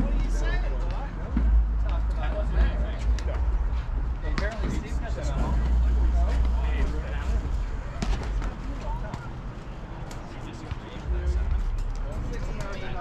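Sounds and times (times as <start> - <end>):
steady low rumble: 0.0 - 10.0, 11.0 - 12.6
indistinct voices talking: 0.0 - 13.0.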